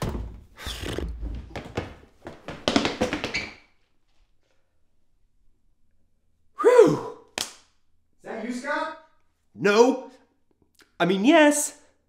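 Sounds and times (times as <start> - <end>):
man yelping: 6.6 - 7.2
hands slapping over mouth: 7.2 - 7.8.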